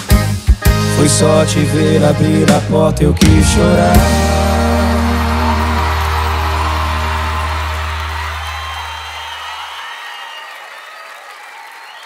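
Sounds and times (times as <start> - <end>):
band holding final chord: 2.2 - 9.0
audience applauding and cheering: 3.2 - 12.0.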